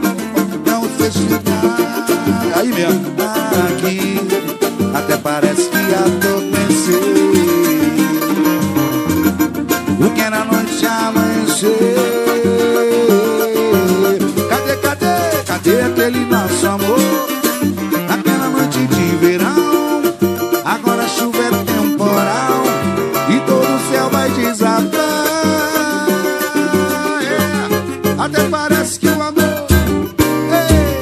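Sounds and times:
percussion groove: 0.0 - 31.0
plucked strings: 0.0 - 31.0
samba band playing: 1.0 - 31.0.

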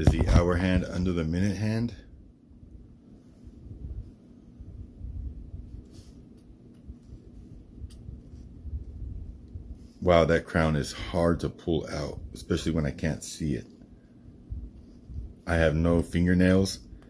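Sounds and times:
faint handling noise: 0.0 - 1.0.

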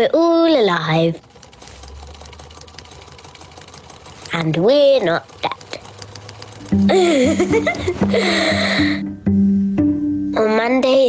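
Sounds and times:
low steady hum: 3.5 - 11.0.

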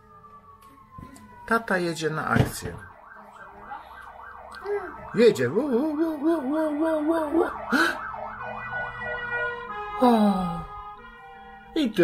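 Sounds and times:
emergency vehicle siren yelping: 0.0 - 11.8.

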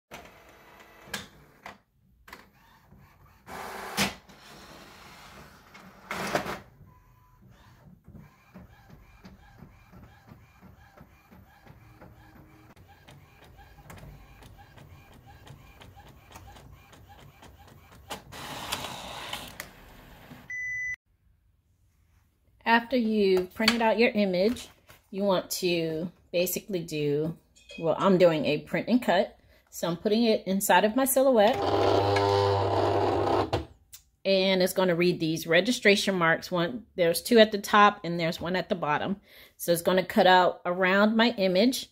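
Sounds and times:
printer paper-feed rustle: 7.4 - 20.5.

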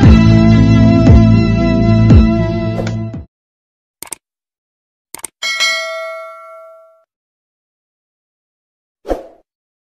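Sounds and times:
quick clicks: 4.0 - 4.2, 5.2 - 5.4
bell ding: 5.4 - 7.1.

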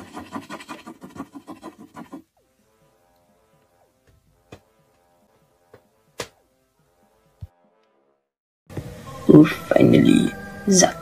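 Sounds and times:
pencil scratching on paper: 0.0 - 3.8.

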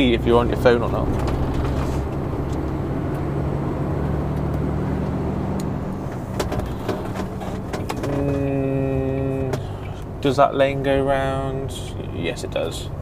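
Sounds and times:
diesel engine drone in cab: 0.0 - 13.0.

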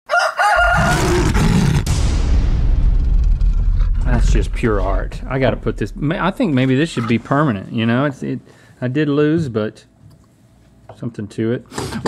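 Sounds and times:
rooster-like crow: 0.1 - 1.6
deep rumble with hiss: 2.9 - 7.5.

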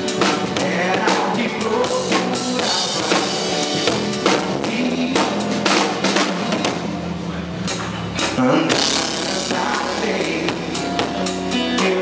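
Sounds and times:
drum kit beats: 0.0 - 12.0
live band playing: 0.0 - 12.0.

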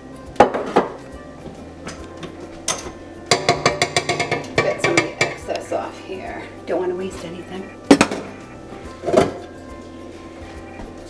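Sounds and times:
quiet background music: 0.0 - 11.0
metal mixer bowl knocking: 3.3 - 5.5.

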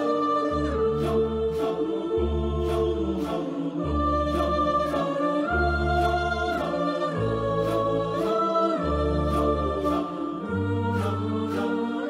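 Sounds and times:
choir singing chords: 0.0 - 12.0
vocal-percussion beat: 0.0 - 12.0.

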